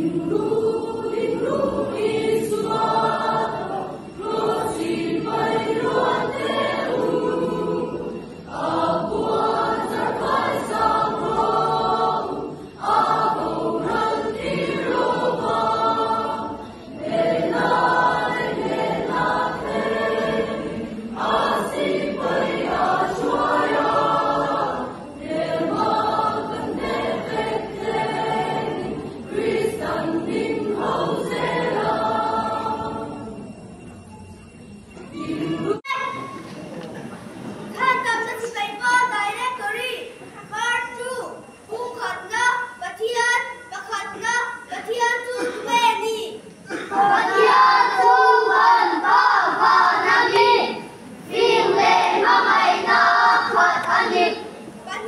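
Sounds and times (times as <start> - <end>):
youth choir singing: 0.0 - 34.0, 34.6 - 38.8, 39.8 - 55.0.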